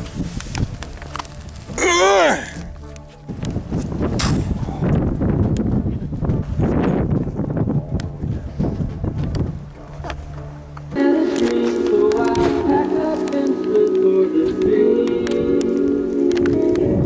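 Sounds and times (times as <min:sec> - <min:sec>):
footsteps rustling through brush: 0:00.0 - 0:01.8, 0:06.2 - 0:16.8
background music: 0:00.0 - 0:17.0.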